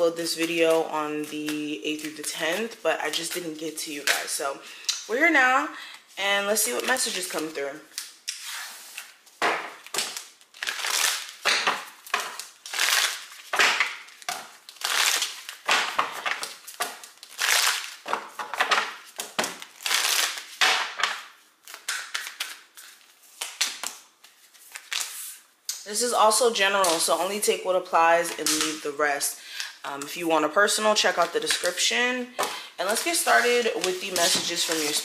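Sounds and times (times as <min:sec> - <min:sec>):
cards being shuffled: 0:06.7 - 0:25.4, 0:32.4 - 0:35.0.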